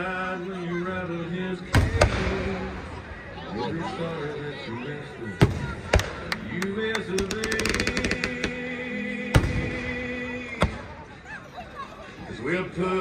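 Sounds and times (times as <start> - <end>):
voices: 0.0 - 13.0
music: 5.1 - 10.9.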